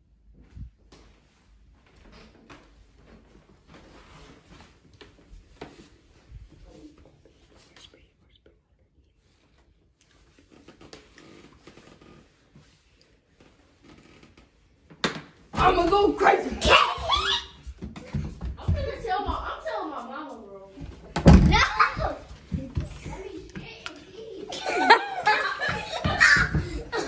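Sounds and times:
soft whispering voices: 6.4s - 10.0s.

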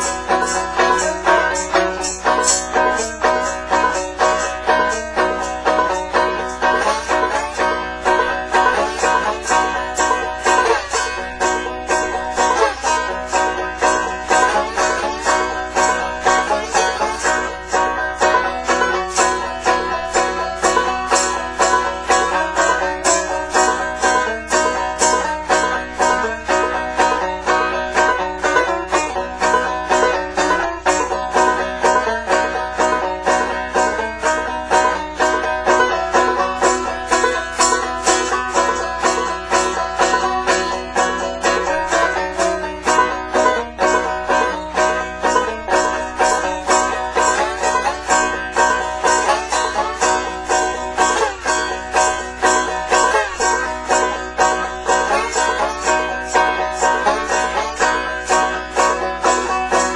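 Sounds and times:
slide banjo playing slow blues: 0.0s - 59.9s
tambourine beat: 0.0s - 59.9s.

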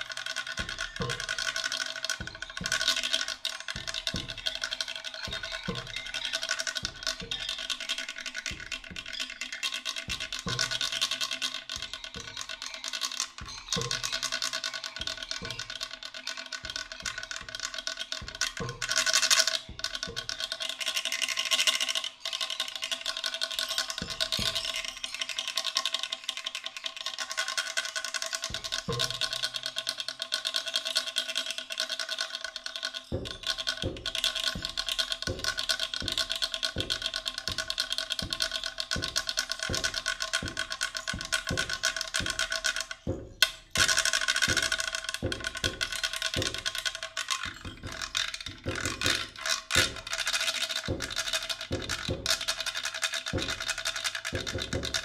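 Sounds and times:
held tones: 0.0s - 26.6s, 27.5s - 55.0s
scratching and rattling percussion: 0.0s - 55.0s.

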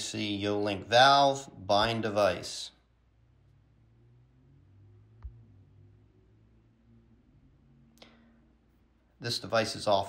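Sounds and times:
faint low room hum: 0.0s - 10.0s.

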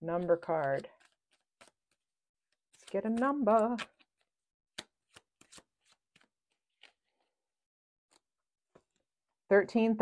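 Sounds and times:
cards being shuffled by hand: 0.2s - 7.4s.

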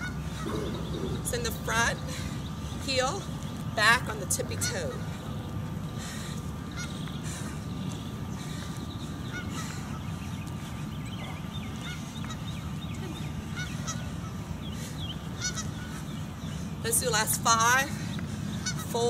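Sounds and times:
birds chirping: 0.0s - 19.0s
low rumble: 0.4s - 3.7s.

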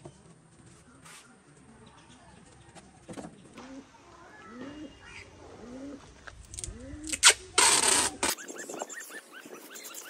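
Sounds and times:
pigeon cooing: 3.6s - 6.1s.

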